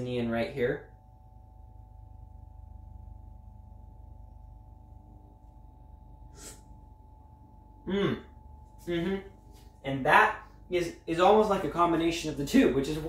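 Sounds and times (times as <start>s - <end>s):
faint room hum: 0.0s - 13.0s.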